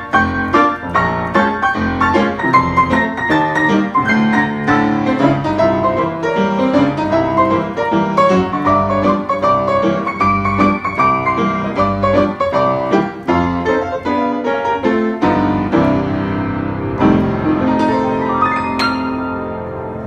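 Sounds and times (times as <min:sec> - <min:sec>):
upright piano playing: 0:00.0 - 0:20.0.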